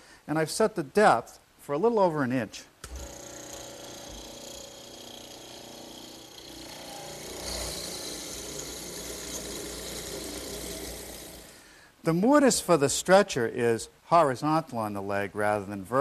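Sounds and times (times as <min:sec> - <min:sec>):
mortiser motor hum: 0:02.8 - 0:11.6
chisel cutting into wood: 0:03.0 - 0:11.4.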